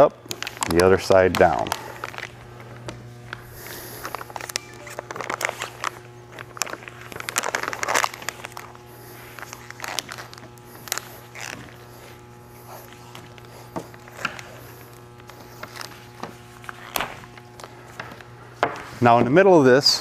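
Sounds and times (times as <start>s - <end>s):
plastic crinkling: 0.0s - 18.9s.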